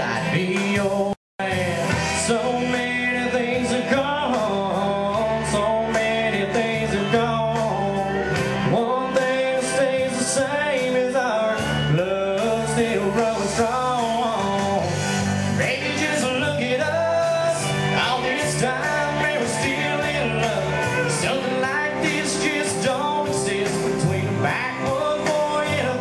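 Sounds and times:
country music backing: 0:00.0 - 0:26.0
man singing: 0:00.0 - 0:26.0.

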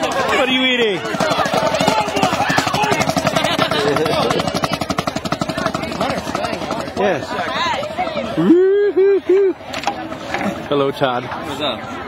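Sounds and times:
snare drums playing fast: 0:00.0 - 0:07.6
voices and chatter: 0:00.0 - 0:12.0.

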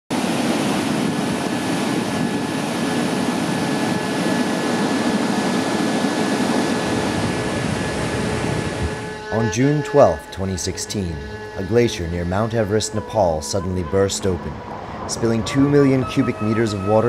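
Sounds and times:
flood torrent roaring: 0:00.1 - 0:17.0.

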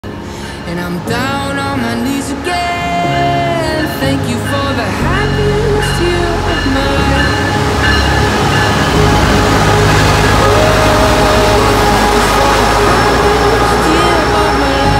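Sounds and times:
background music: 0:00.0 - 0:14.9
train rumble and rail noise: 0:00.0 - 0:14.9.

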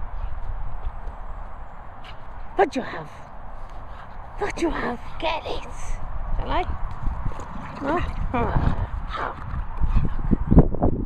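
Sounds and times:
paws and ball thudding on grass: 0:06.8 - 0:08.3.

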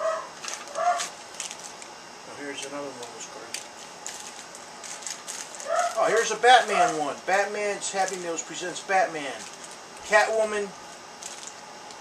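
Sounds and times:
plastic bags crinkling: 0:00.4 - 0:01.9, 0:02.6 - 0:12.0.

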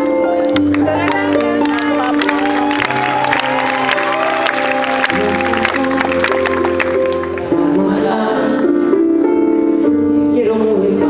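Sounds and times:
audience clapping: 0:00.4 - 0:07.7
live band music: 0:00.5 - 0:08.2
crowd noise: 0:00.6 - 0:09.8.

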